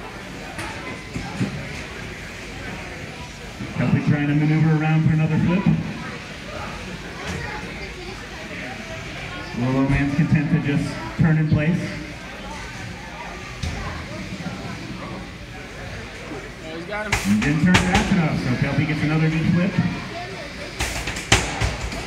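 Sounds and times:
crowd murmur: 0.0 - 22.0
voices: 0.0 - 22.0.

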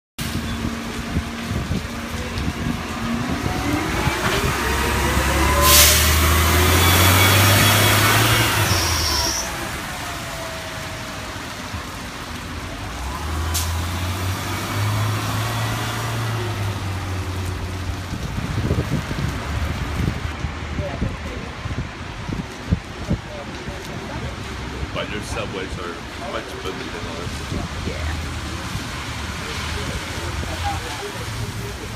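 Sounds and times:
bus engine accelerating: 0.2 - 20.4.

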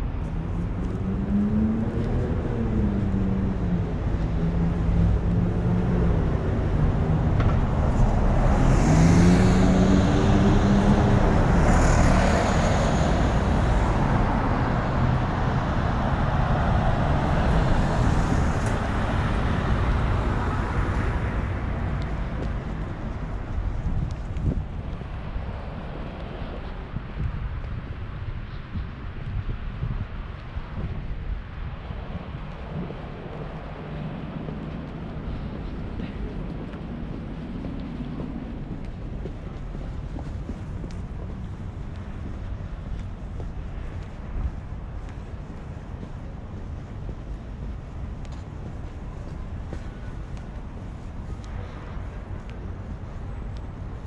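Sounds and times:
road traffic passing: 0.0 - 54.0
vehicle engine accelerating: 0.3 - 24.6.

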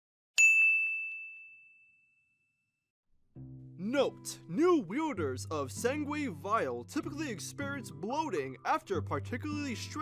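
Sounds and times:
bright bell ding: 0.4 - 2.6.

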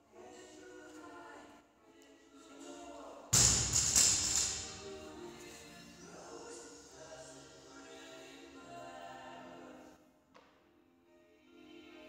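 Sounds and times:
barbell thudding on rubber floor: 3.4 - 4.9
barbell rattling: 3.4 - 5.0.

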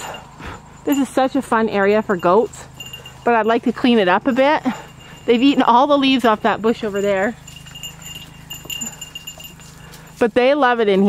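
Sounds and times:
crickets chirping: 0.0 - 10.2
faint rustling: 0.0 - 11.0.

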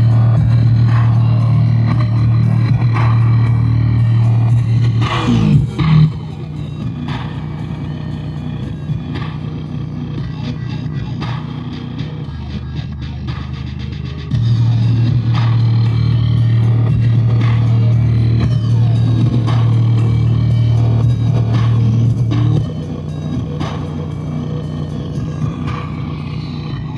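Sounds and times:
car speaker deep bass drone: 0.0 - 26.9.

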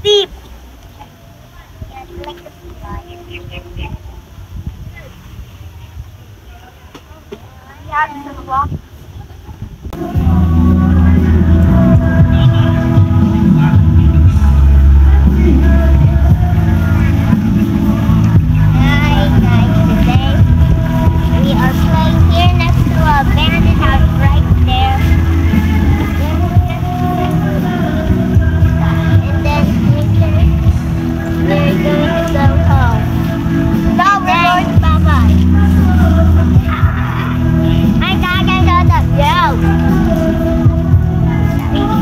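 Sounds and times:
children calling out: 0.0 - 5.3, 14.6 - 42.0
loud low rumble: 9.9 - 42.0
pop song with sung vocal: 10.0 - 42.0.

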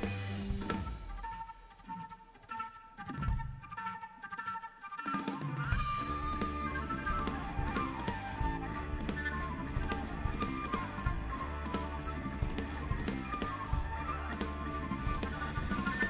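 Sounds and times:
rock band playing: 0.0 - 1.6, 5.2 - 16.0
drum kit: 0.0 - 2.2, 5.1 - 16.0
flute melody: 0.0 - 16.0.

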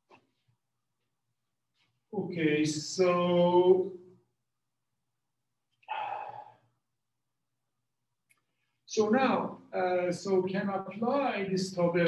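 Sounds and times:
man sighing: 5.9 - 6.6.

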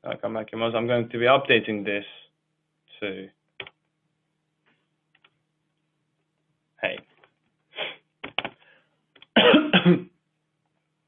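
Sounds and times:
man coughing loudly: 9.4 - 10.1.

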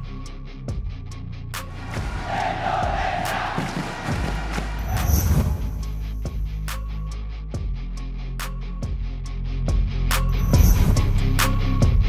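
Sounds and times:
background music with bass: 0.0 - 12.0
stadium crowd cheering: 1.7 - 6.0.

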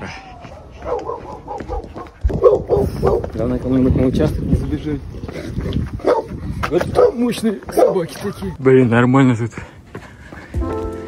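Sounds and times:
dogs barking: 0.5 - 3.3, 6.0 - 8.4.

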